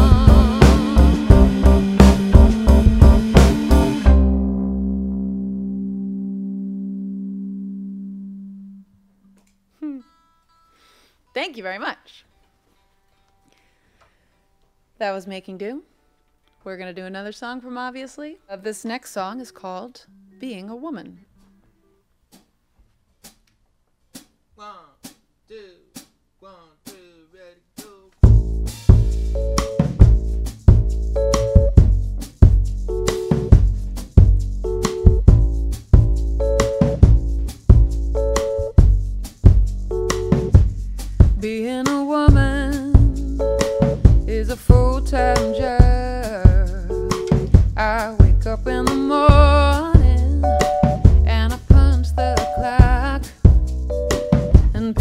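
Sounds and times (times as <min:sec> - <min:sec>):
live band playing soul-pop: 0:00.0 - 0:04.3, 0:28.3 - 0:55.0.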